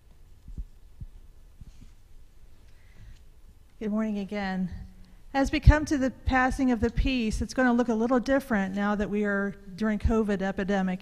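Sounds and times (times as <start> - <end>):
quiet low hum: 0.0 - 11.0.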